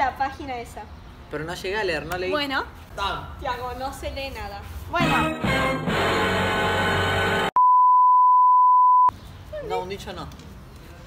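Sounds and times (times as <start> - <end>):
background music: 5.0 - 7.6
censor bleep: 7.6 - 9.1.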